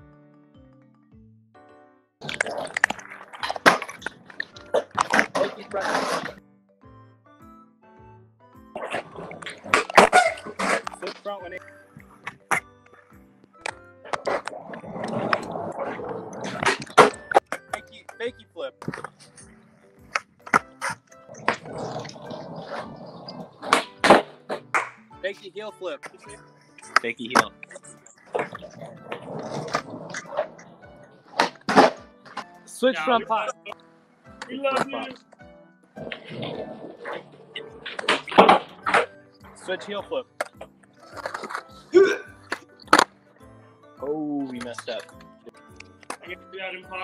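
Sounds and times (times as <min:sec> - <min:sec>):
background music with held tones: 0:00.0 - 0:47.0
skateboard sharp cracks: 0:02.2 - 0:06.4, 0:08.8 - 0:11.2, 0:13.6 - 0:17.8, 0:20.1 - 0:25.0, 0:31.3 - 0:32.4, 0:36.0 - 0:39.2, 0:42.5 - 0:43.1
skateboard wheels rolling on concrete: 0:02.2 - 0:06.4, 0:08.7 - 0:25.2, 0:26.0 - 0:32.6, 0:34.3 - 0:43.6
skateboard clacks: 0:20.1 - 0:25.0, 0:31.3 - 0:32.5.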